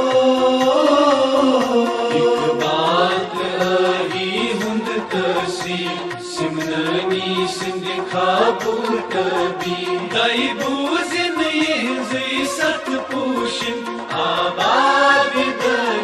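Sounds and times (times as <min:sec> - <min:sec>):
instrumental backing with beat: 0:00.0 - 0:16.0
person singing a melody: 0:00.0 - 0:16.0.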